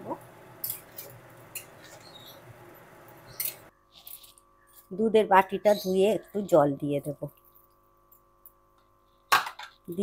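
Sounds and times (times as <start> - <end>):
spatula scraping in pan: 0.6 - 2.5.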